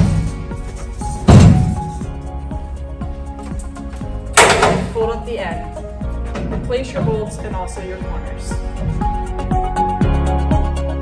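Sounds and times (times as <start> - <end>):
metal panel clanging shut: 4.3 - 5.0.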